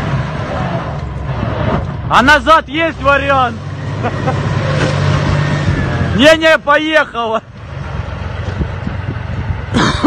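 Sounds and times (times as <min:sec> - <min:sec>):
tank engine droning: 0:00.0 - 0:10.0.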